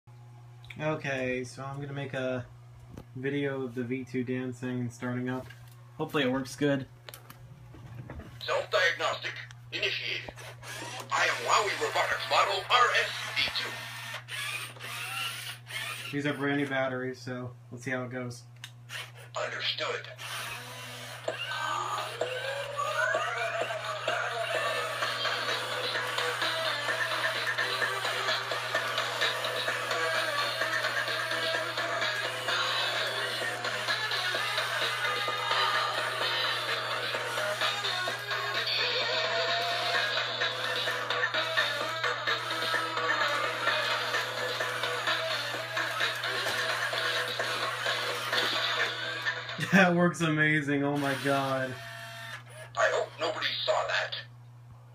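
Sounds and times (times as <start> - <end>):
toy robot dance music: 10.8 - 16.1, 20.2 - 49.7.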